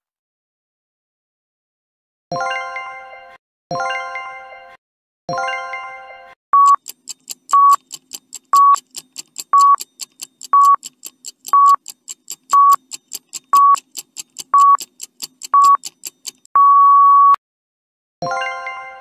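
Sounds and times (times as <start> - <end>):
short high beeps: 6.6 - 6.8, 7.6 - 7.8, 14.6 - 14.8, 15.6 - 15.8, 16.6 - 17.4
fast timer ticking: 6.6 - 16.5.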